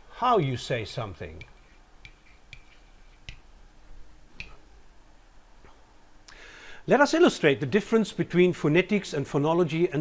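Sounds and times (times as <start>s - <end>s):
pen tapping on whiteboard: 1.4s - 3.5s.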